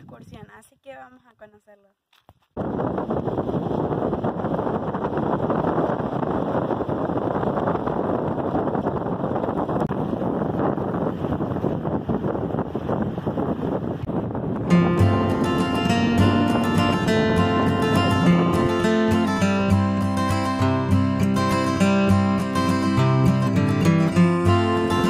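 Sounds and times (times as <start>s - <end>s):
wind buffeting microphone: 0.0s - 0.7s, 2.3s - 25.0s
vehicle engine and tyre noise: 3.1s - 14.8s
acoustic guitar music: 14.2s - 25.0s.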